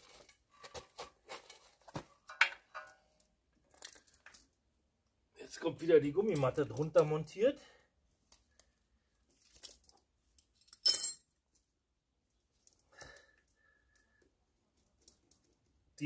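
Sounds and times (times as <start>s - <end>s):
wrenches clattering on concrete: 2.2s - 3.1s, 9.5s - 11.3s.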